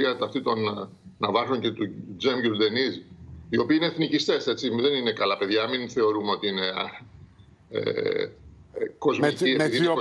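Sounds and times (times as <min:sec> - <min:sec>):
man speaking: 0:07.8 - 0:10.0.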